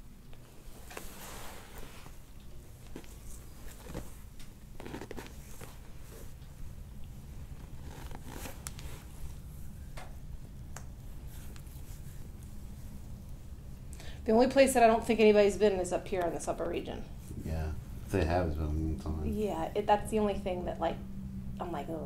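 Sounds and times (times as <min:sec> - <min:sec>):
steady low hum: 0:00.0 - 0:22.0
hands rubbing on a shirt: 0:00.7 - 0:09.8, 0:11.0 - 0:13.5.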